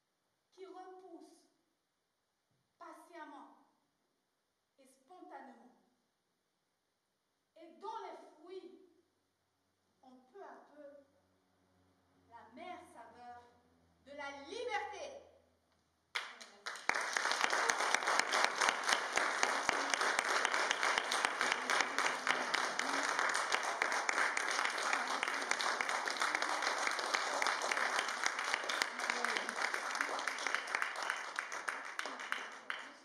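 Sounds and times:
crowd applauding: 16.2 - 33.0.

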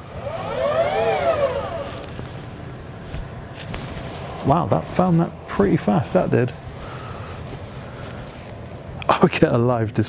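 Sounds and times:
telescope motors whining: 0.0 - 5.2.

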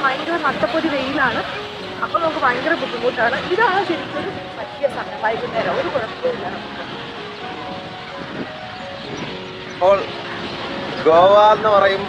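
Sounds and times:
faint music of held notes: 0.0 - 12.0
outdoor background noise: 0.0 - 12.0.

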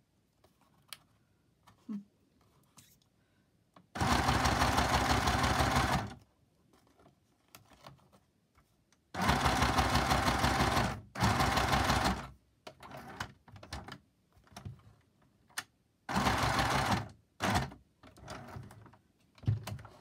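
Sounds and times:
sewing machine stitching: 4.0 - 6.2, 9.2 - 13.4, 16.1 - 18.8.

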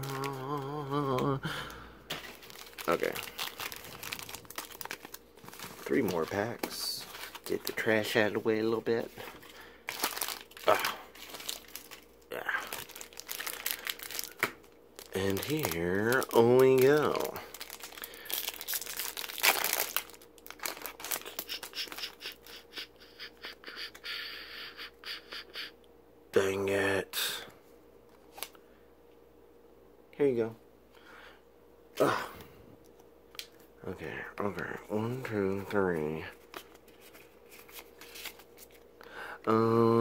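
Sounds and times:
foil packaging crinkling: 0.0 - 23.3, 34.9 - 38.9
cards rustling: 2.1 - 22.6, 34.3 - 38.9.

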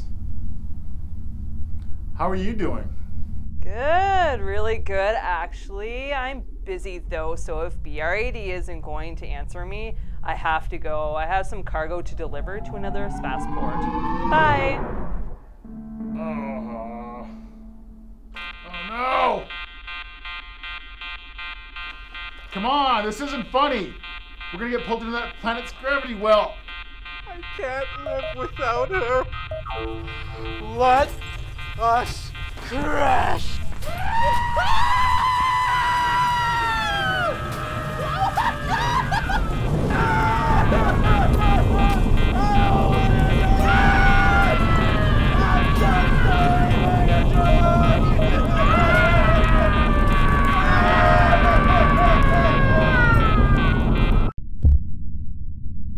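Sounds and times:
low rumble: 0.0 - 18.7, 19.4 - 55.9
pulsing electronic alarm buzzer: 12.1 - 33.9, 40.6 - 54.3
high-pitched voice: 16.1 - 17.5
person crying out: 16.2 - 17.5, 38.0 - 53.6
man laughing manically: 38.0 - 42.0.

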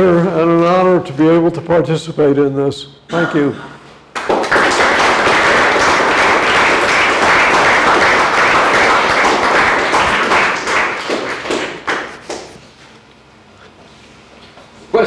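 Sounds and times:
audience clapping: 4.1 - 12.6.

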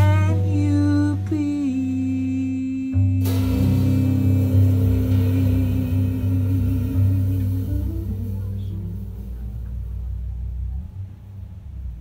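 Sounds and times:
long held sung note: 0.0 - 9.7
jazz band holding a chord: 0.0 - 12.0
cymbal crash: 3.2 - 10.4.

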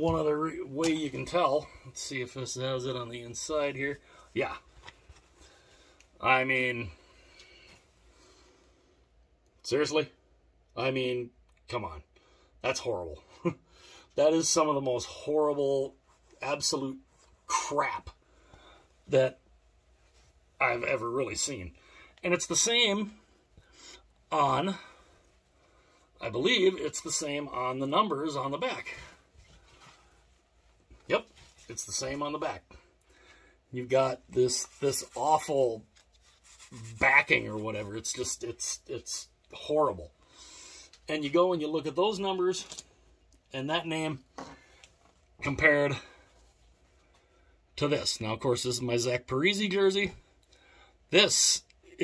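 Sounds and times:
fabric rustling: 28.6 - 32.5.

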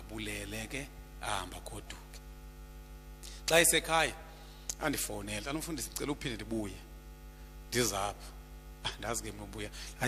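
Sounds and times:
man speaking into a microphone: 0.0 - 2.2, 3.3 - 6.9, 7.7 - 10.0
electrical mains hum: 0.0 - 10.0.

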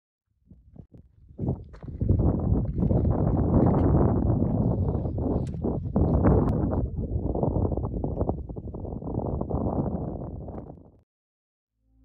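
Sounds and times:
wind rumbling on microphone: 0.4 - 11.0
footsteps on loose rock: 1.4 - 6.2.

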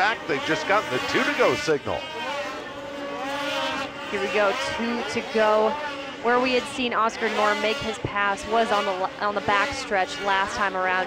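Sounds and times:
snowmobile engines at high revs: 0.0 - 11.0.

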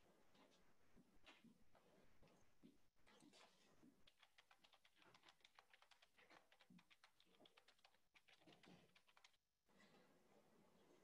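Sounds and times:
computer keyboard typing: 4.1 - 9.4.

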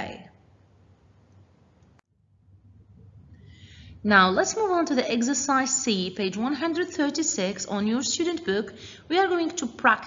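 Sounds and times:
faint low electrical hum: 0.0 - 10.0.

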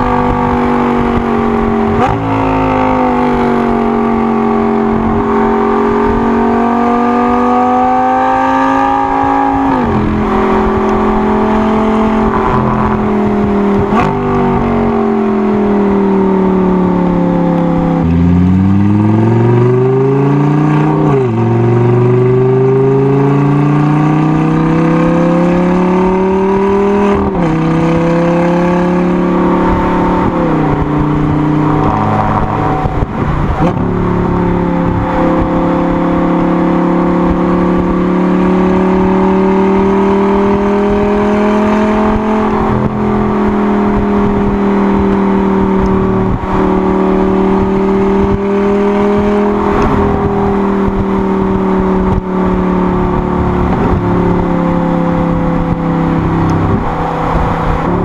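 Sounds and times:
sports car engine revving: 0.0 - 58.0.

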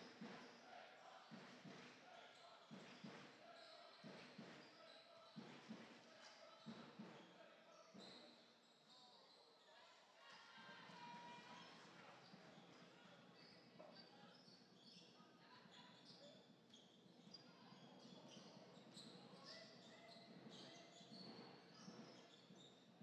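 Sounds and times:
basketball bouncing in a hall: 0.0 - 8.8, 10.9 - 22.9.

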